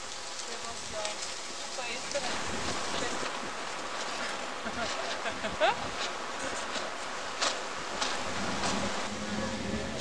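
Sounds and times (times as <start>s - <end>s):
wind: 0.0s - 10.0s
outboard motor buzzing drone: 8.2s - 10.0s.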